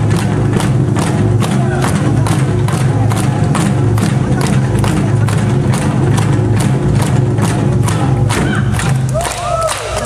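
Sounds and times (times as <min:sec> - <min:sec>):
barrel drums beaten fast: 0:00.0 - 0:10.0.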